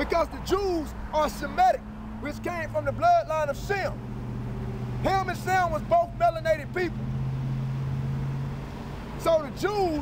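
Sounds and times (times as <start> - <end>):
vehicle engine passing: 0.8 - 10.0.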